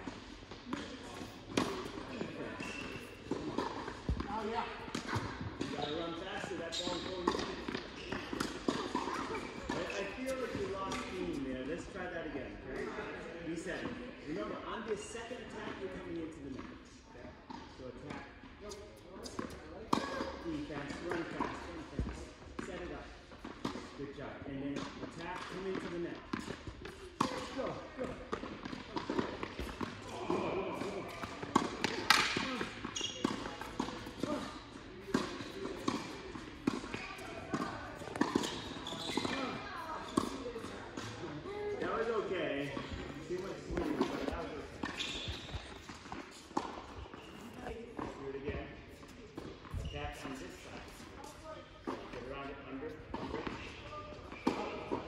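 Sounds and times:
tennis balls struck by rackets: 0.0 - 5.9, 7.1 - 11.4, 19.3 - 24.0, 24.7 - 48.2
tennis balls bouncing on court: 0.0 - 11.4, 17.4 - 24.0, 24.7 - 52.3, 52.9 - 55.0.

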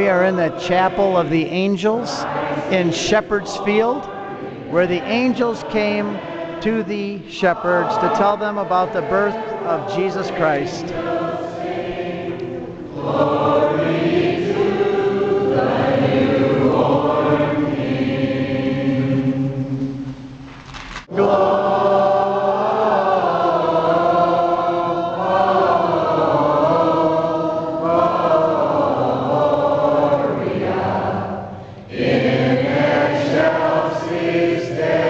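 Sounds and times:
group singing a hymn: 0.0 - 20.3, 21.0 - 35.0.

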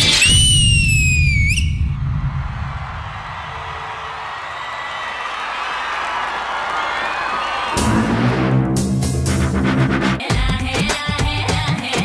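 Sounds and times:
shrill whistle sliding down: 0.0 - 2.0
audience applause and cheering: 1.8 - 9.9
dance music: 7.7 - 12.0.

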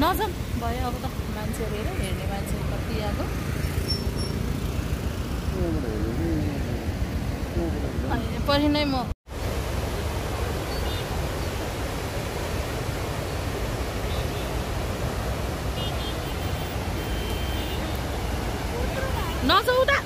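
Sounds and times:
river torrent rushing over rocks: 0.0 - 3.6, 4.4 - 20.0.

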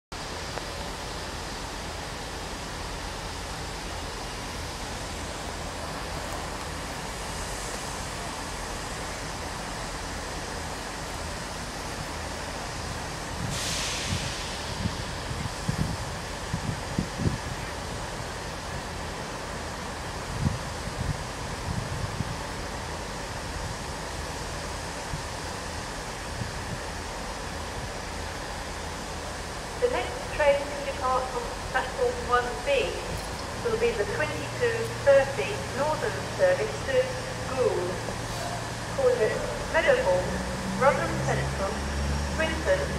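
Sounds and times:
diesel train idling hum: 0.1 - 42.9
hissing air burst: 13.4 - 15.3
wind thumps on microphone: 13.4 - 17.5.

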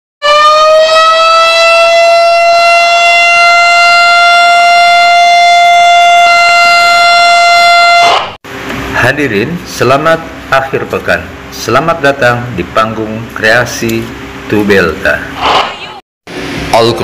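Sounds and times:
siren-like wail: 0.2 - 8.4.

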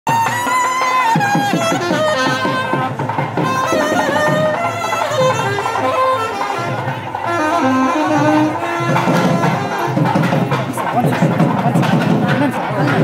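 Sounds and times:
brass instrument melody: 0.1 - 10.8
drums beating: 0.1 - 13.0.

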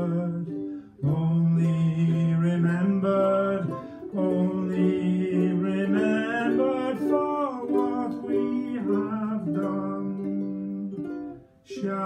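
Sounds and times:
ukulele: 0.0 - 12.0.

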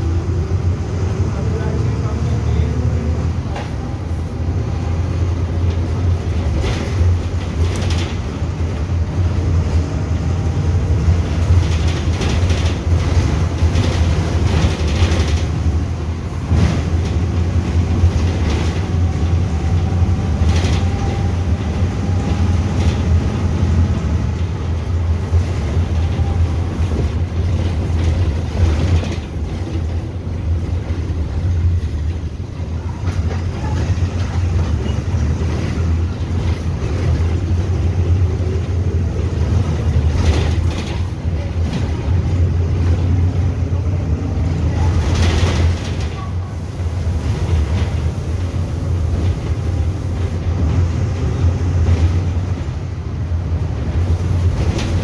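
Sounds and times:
bus engine drone: 0.0 - 55.0
bus body knocks and rattles: 5.4 - 8.9, 10.9 - 43.1, 44.6 - 46.3, 53.9 - 55.0.

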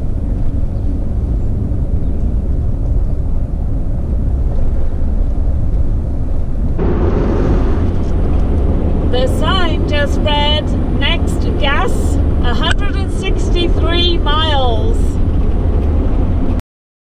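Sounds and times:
vehicle road and engine rumble: 0.0 - 16.6.

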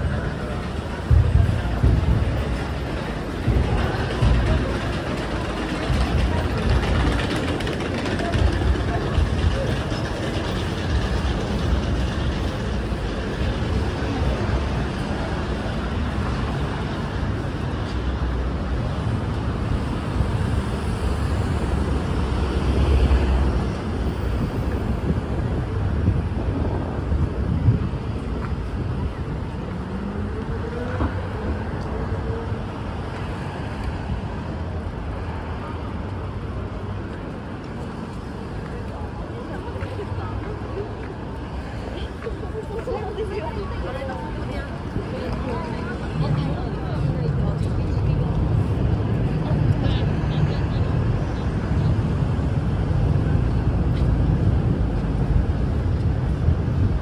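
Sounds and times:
indistinct voices: 0.0 - 18.0
road traffic: 0.0 - 57.0.

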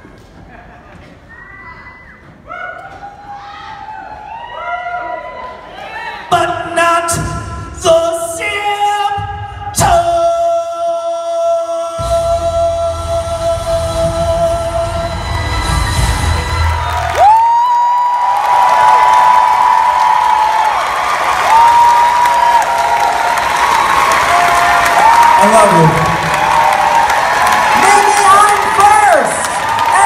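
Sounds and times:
audience applauding and cheering: 15.0 - 30.0.

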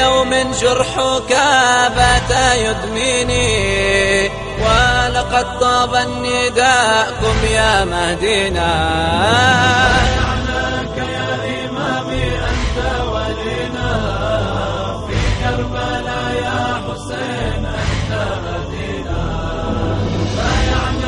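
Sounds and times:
voices chanting: 7.1 - 21.0
deep low drone: 7.2 - 21.0.

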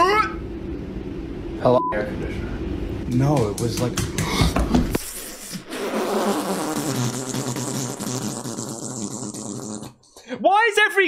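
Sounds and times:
bare feet running on hard floor: 3.1 - 5.0.

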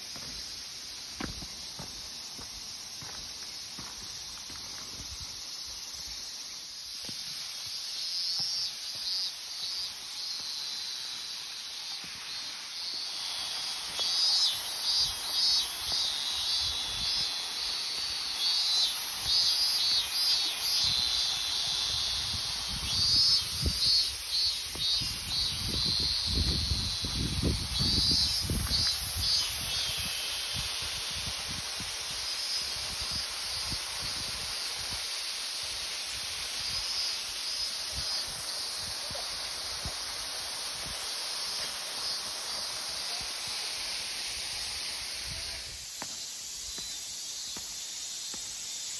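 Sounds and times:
cicadas buzzing: 0.0 - 48.9
steady high hiss: 0.0 - 48.9.

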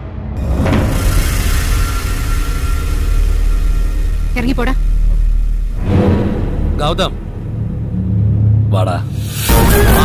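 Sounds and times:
rumbling dramatic film score drone: 0.0 - 10.0.

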